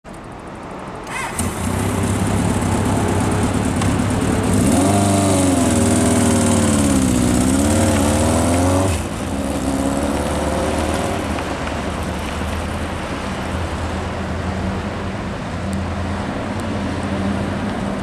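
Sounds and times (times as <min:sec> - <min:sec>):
motorcycle engine revving: 0:01.1 - 0:11.4.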